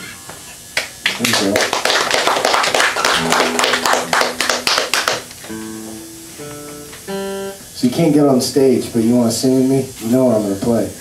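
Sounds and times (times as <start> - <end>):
small audience applauding: 0.8 - 5.9
acoustic guitar chord: 3.0 - 8.3
plucked acoustic guitar notes: 3.2 - 7.7.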